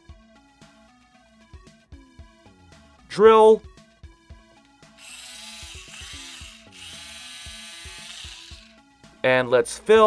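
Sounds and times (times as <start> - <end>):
toy drill whirring: 5.0 - 8.8.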